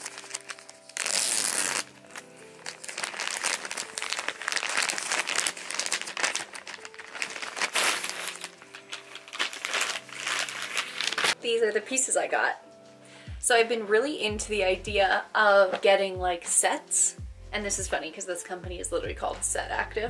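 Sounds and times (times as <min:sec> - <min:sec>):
plastic bag crinkling and tearing: 0:00.0 - 0:11.4
soft background music: 0:00.0 - 0:20.0.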